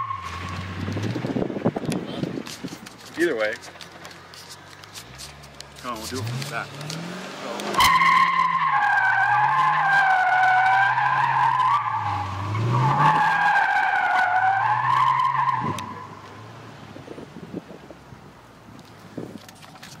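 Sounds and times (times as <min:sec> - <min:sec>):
car engine revving: 0:00.0 - 0:17.7
faint handling noise: 0:01.9 - 0:06.9
tyres squealing: 0:02.6 - 0:16.2.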